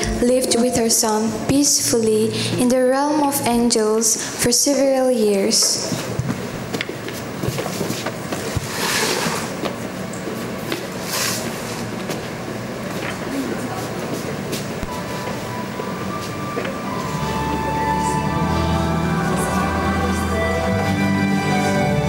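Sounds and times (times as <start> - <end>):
soft music: 0.0 - 4.0, 14.8 - 22.0.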